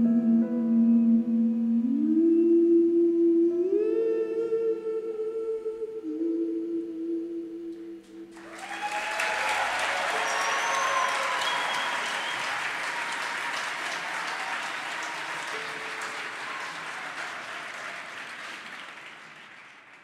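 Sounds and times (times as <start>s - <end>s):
audience applauding: 8.3s - 20.0s.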